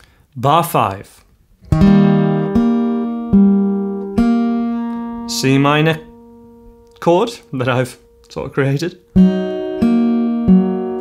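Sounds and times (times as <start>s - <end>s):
acoustic guitar fingerpicked: 1.6s - 11.0s.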